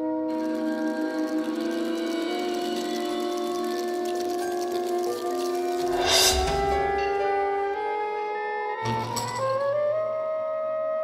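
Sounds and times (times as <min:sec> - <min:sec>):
ensemble holding ringing chord: 0:05.6 - 0:07.8.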